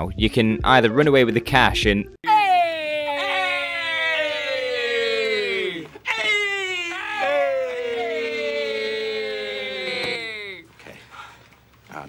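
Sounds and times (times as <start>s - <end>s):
broken vocal sounds: 2.2s - 10.6s
men shouting together: 2.2s - 10.6s.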